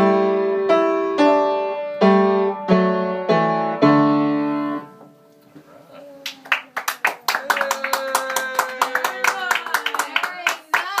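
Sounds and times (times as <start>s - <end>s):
person cheering: 6.0s - 11.0s
people clapping: 6.2s - 11.0s.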